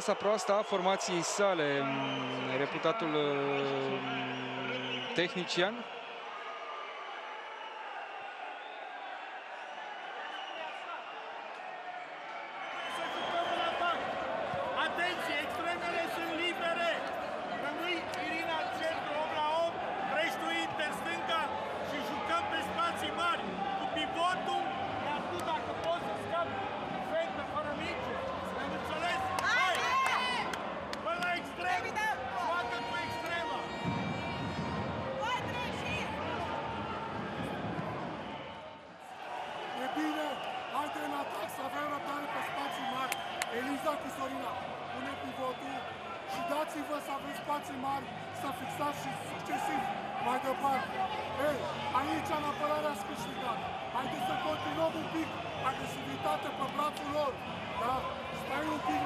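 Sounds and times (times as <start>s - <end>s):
echoing crowd noise: 0.0s - 59.0s.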